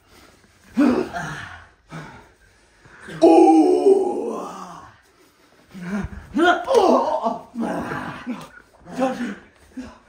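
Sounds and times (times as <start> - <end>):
man groaning in pain: 3.1 - 4.8.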